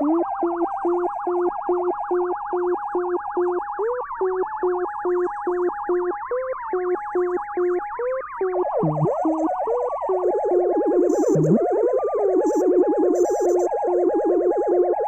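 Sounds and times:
synthesizer electronica: 8.7 - 13.7
fast warbling high tone: 8.8 - 9.6, 11.1 - 11.8.

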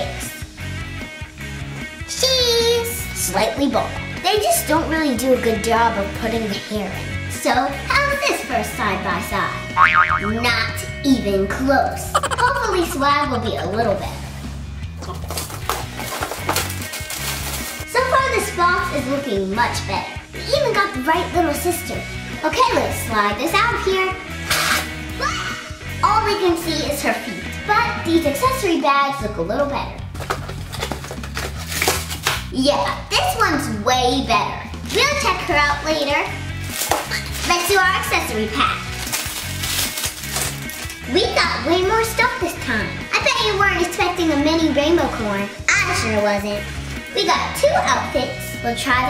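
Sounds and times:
background music with bass: 0.0 - 2.2, 2.8 - 49.0
background music with bass line: 8.8 - 17.2
plastic wrapping crinkling: 15.3 - 17.9, 30.4 - 32.5, 38.8 - 41.0.

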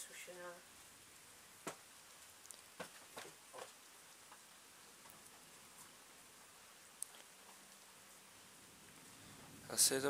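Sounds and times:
faint hiss of night air: 0.0 - 10.0.

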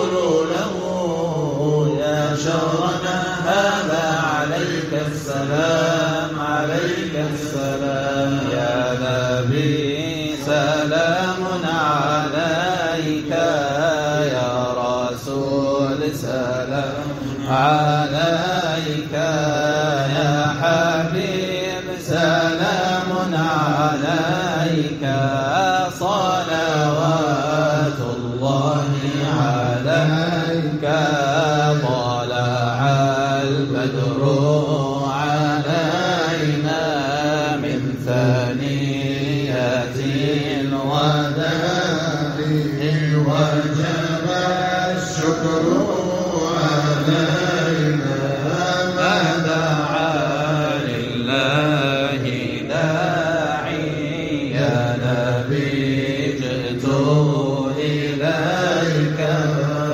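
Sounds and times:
low sustained group chant: 0.0 - 59.9.

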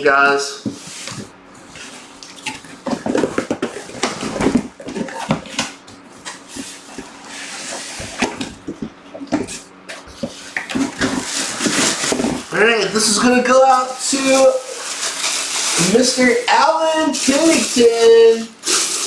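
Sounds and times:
cardboard packaging rustling: 0.7 - 19.0.

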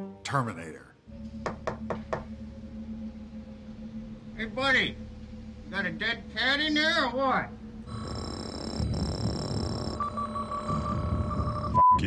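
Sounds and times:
knocks on a door: 1.4 - 2.4.

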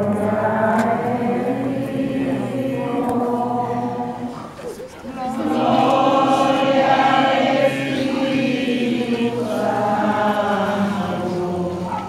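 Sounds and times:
crowd singing a hymn: 0.0 - 12.0.

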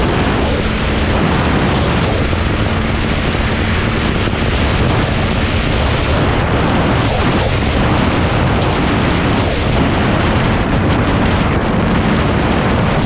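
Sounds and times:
dirt bike engine cruising: 0.0 - 13.0
wind rush on microphone: 0.0 - 13.0.

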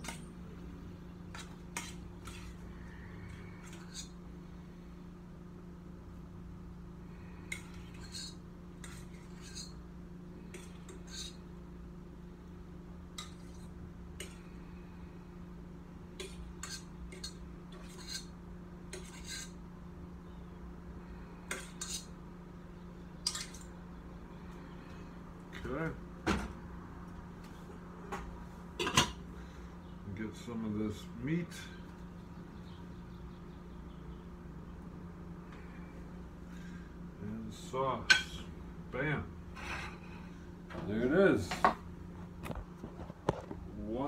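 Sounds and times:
steady low hum: 0.0 - 44.0
utensil scraping metal saucepan: 1.3 - 4.2, 7.4 - 9.8, 10.5 - 11.5, 16.2 - 19.6, 21.5 - 22.2.

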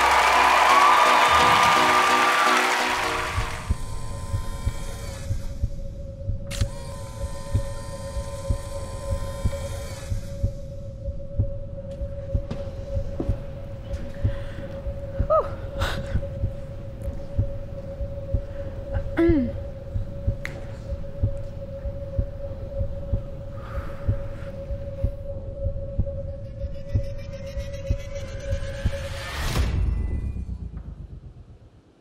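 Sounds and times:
steady droning tone: 2.8 - 32.0
heartbeat sound effect: 3.2 - 31.2.

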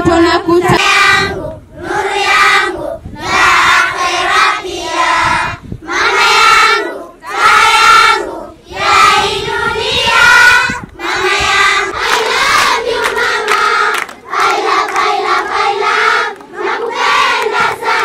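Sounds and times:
girls singing in unison: 0.6 - 18.0.

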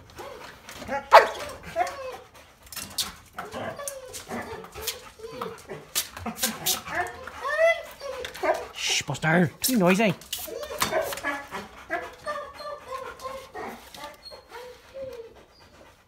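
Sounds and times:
dog moaning and whining: 0.0 - 16.0
dog yelping: 0.2 - 2.3, 3.4 - 9.0, 10.4 - 15.6.

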